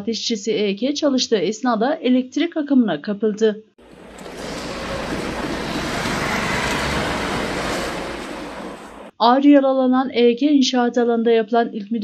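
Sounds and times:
outdoor rushing ambience: 0:03.8 - 0:09.1.

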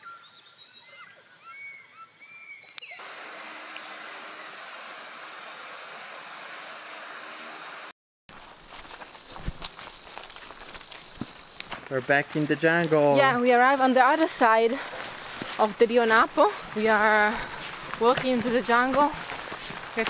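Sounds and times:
footsteps crunching on leaves: 0:08.3 - 0:20.0
high-pitched insect chorus: 0:08.3 - 0:20.0.

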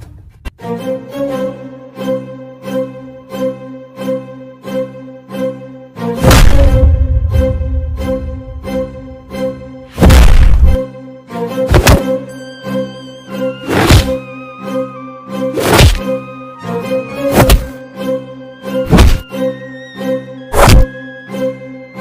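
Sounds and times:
dramatic action music: 0:00.6 - 0:22.0
heavy booming hits: 0:06.2 - 0:09.0, 0:09.9 - 0:10.8.

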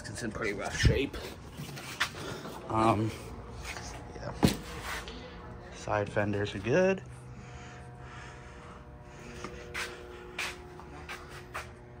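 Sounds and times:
short scuffing sounds: 0:09.4 - 0:11.8.

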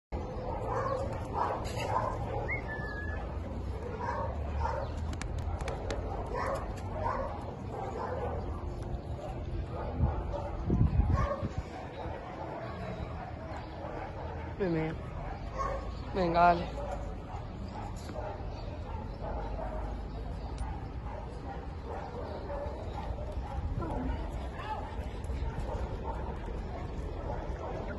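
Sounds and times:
dog barking: 0:00.2 - 0:03.0, 0:03.8 - 0:16.0, 0:16.6 - 0:27.9.

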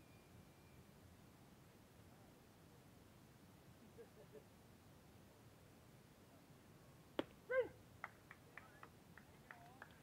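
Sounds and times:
person shouting a call: 0:07.5 - 0:07.8.

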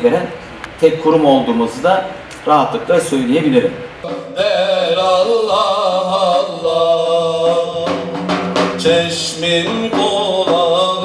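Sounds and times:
steady drone: 0:03.7 - 0:11.0
frame drum strokes: 0:04.0 - 0:05.6, 0:07.4 - 0:11.0
man singing a hymn: 0:04.0 - 0:11.0.

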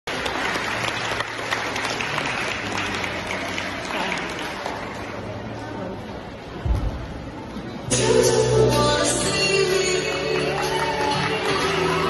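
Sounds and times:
audience applauding: 0:00.1 - 0:05.3, 0:10.1 - 0:12.0.

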